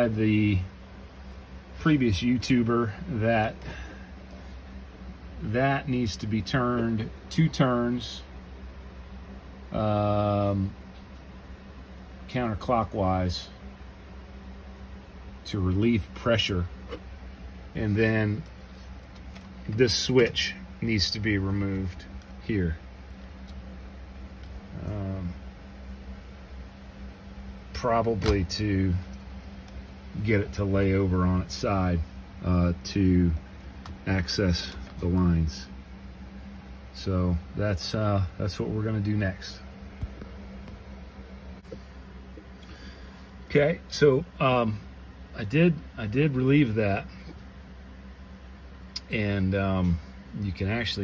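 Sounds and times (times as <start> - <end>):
low background hum: 0.0 - 51.0
person speaking: 1.8 - 4.0, 15.4 - 26.8, 27.5 - 36.3.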